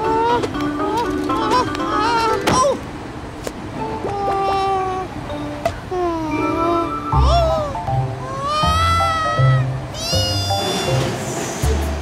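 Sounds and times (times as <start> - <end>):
cartoon monkey squeaky cry: 6.5 - 11.0.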